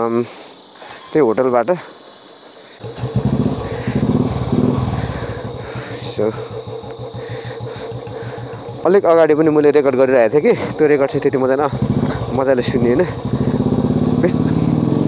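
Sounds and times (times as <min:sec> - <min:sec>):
motorcycle engine starting and idling: 0:02.8 - 0:15.0.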